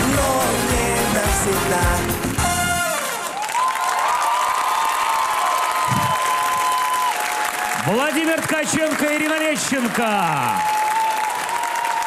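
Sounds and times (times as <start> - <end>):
dance song: 0.0 - 3.3
audience applauding and cheering: 0.0 - 12.0.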